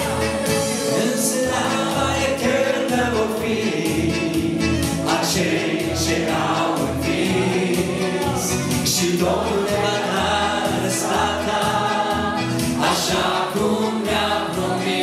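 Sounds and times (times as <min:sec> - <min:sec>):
instrumental backing with low beat: 0:00.0 - 0:15.0
man and woman singing: 0:00.0 - 0:15.0
men singing as a choir: 0:00.0 - 0:15.0.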